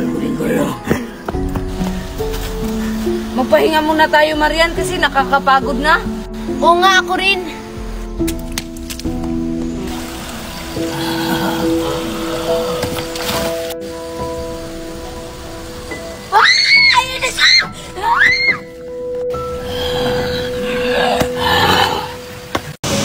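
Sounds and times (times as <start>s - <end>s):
music with long held tones: 0.0s - 23.0s.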